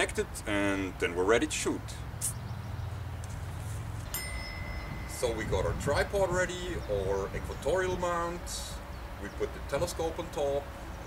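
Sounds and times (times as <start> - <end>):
low steady rumble: 0.0 - 11.0
bell-like chime: 4.1 - 5.6.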